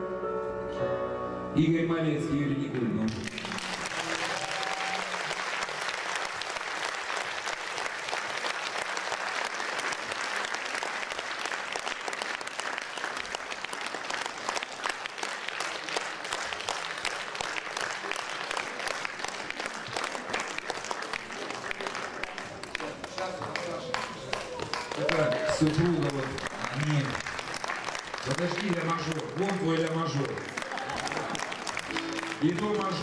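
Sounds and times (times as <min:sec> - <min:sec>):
audience applauding: 0:03.1 - 0:33.0.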